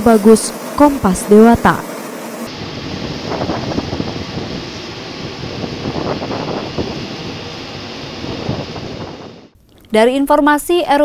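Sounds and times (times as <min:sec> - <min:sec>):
water jets spraying: 0:00.0 - 0:09.5.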